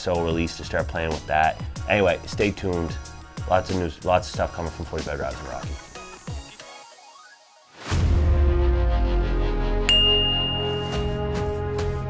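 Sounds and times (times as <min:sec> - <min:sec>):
outro music: 0:08.0 - 0:12.0
notification bell ding: 0:09.9 - 0:11.5.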